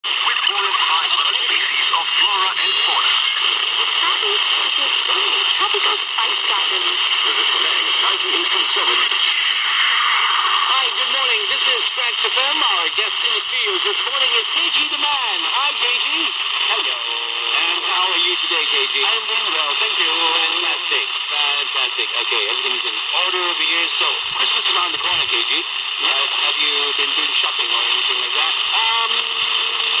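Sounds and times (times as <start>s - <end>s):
person talking on radio: 0.0s - 9.3s, 10.7s - 30.0s
radio static hiss: 0.0s - 30.0s.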